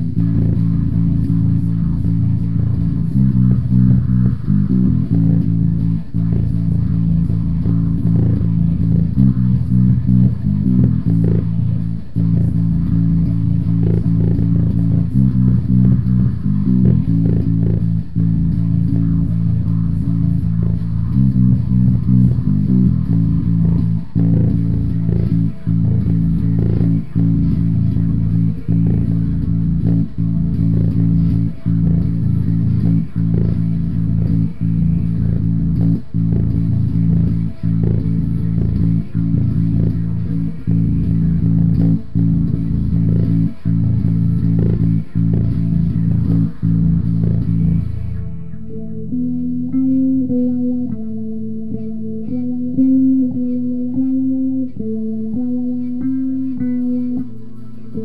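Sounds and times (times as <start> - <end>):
electric bass guitar riff: 0.0 - 58.0.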